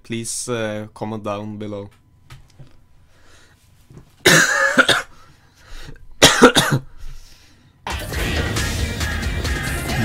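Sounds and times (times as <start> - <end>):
person coughing: 4.2 - 5.3, 6.2 - 7.0.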